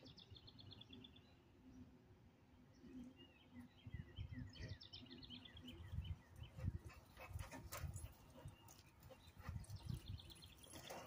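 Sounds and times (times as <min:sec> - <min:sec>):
songbird trill: 0:00.0 - 0:11.0.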